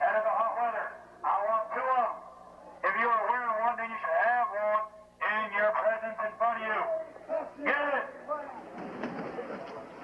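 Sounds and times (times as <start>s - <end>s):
man talking: 0.0s - 8.7s.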